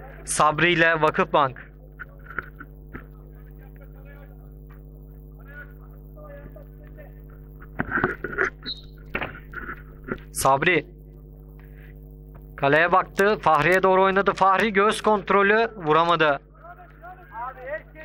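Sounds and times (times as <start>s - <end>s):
electrical hum: 0.0s - 18.0s.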